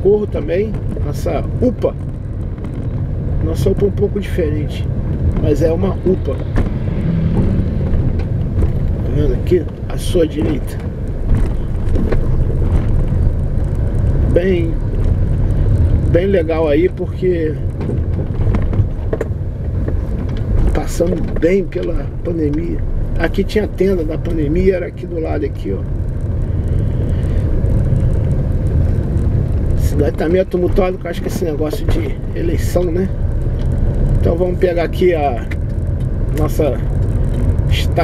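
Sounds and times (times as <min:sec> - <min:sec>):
car engine and road noise: 0:00.0 - 0:38.0.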